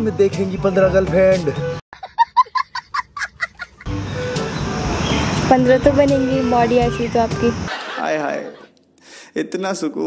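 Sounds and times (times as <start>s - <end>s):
child laughing hysterically: 2.0s - 3.9s.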